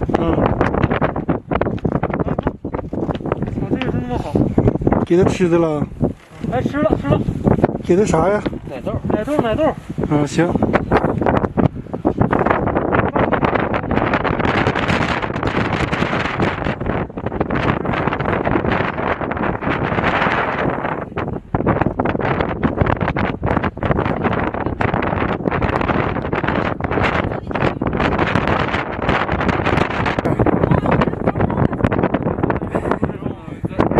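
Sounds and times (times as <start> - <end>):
wind blowing across microphone: 0.0 - 33.9.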